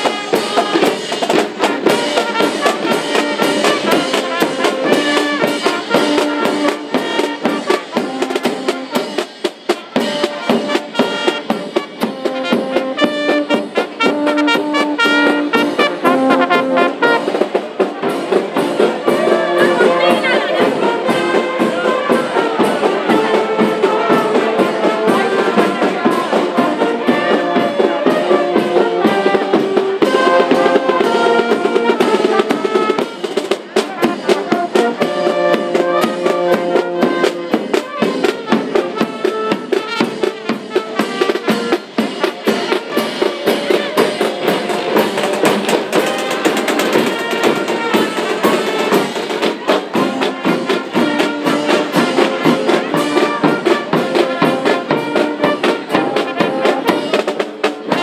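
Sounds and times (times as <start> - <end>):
brass band playing: 0.0 - 58.0
snare and bass drum beating: 0.0 - 58.0.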